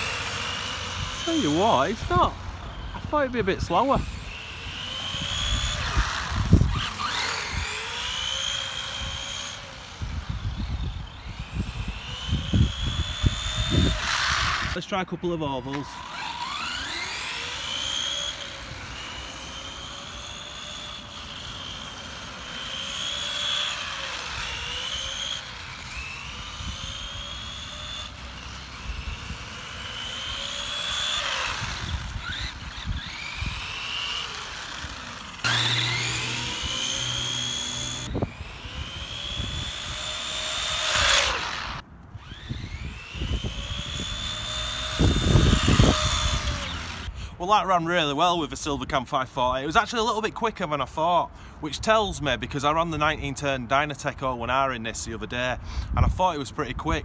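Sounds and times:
toy car motor whining: 0.0 - 48.2.

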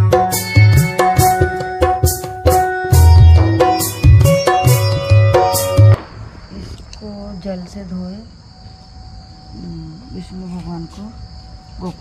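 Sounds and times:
crickets chirping: 3.3 - 12.0.

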